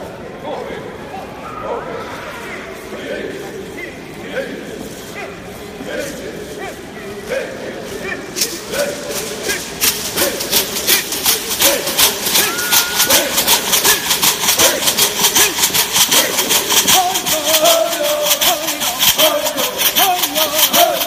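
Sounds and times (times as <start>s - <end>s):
group chanted singing: 4.2s - 21.0s
shell leg rattles shaking: 8.4s - 21.0s.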